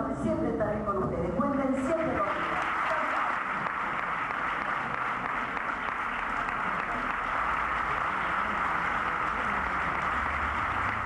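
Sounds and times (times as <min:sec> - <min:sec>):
audience applauding: 0:02.0 - 0:11.0
crowd voices: 0:02.7 - 0:11.0.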